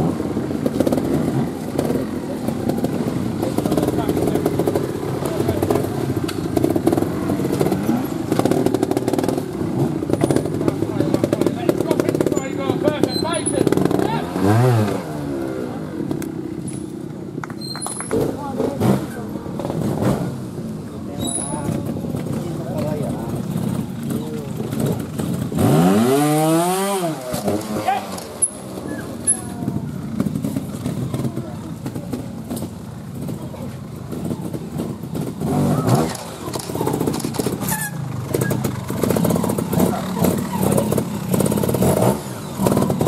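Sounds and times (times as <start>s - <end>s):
motorcycle engine revving: 0.0s - 43.0s.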